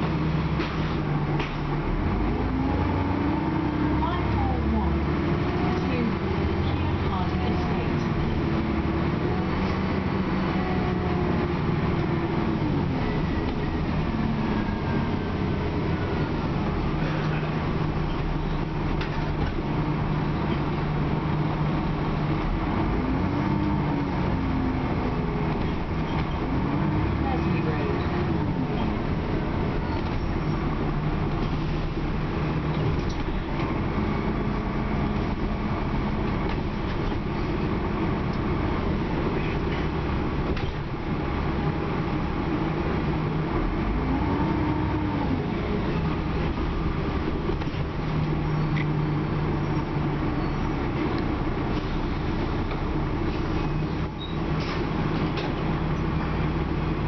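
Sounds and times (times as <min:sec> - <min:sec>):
bus engine drone: 0:00.0 - 0:57.0.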